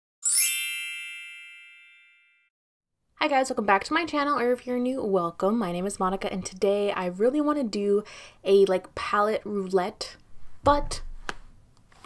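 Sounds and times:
bright chime with shimmering sparkle: 0:00.2 - 0:02.5.

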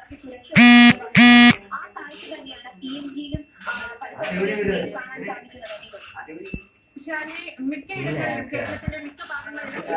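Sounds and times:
electronic buzzer tones: 0:00.6 - 0:01.6.

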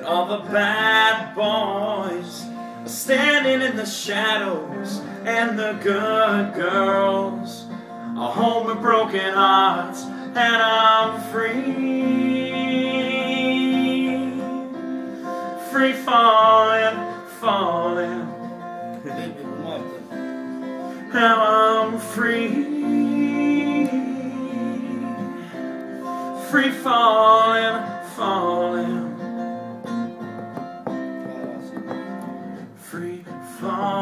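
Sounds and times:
person singing long sliding notes: 0:00.0 - 0:29.3
accompanying chords: 0:00.0 - 0:34.0.

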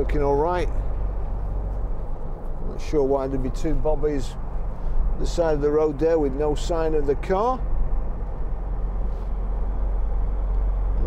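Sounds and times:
car engine hum: 0:00.0 - 0:11.0
road and wind noise: 0:00.0 - 0:11.0.

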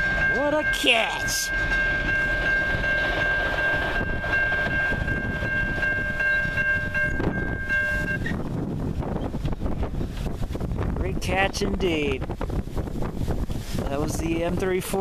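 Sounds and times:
steady high-pitched tone: 0:00.0 - 0:08.3
train wheels rumbling on rails: 0:00.0 - 0:15.0.

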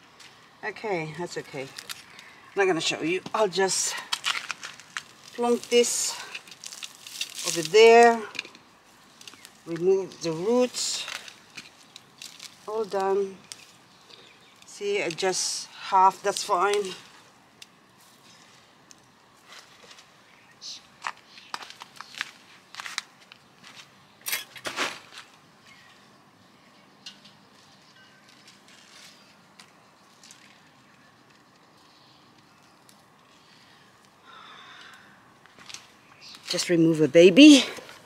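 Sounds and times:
soil rustling and crackling: 0:00.1 - 0:26.0, 0:27.4 - 0:38.0.

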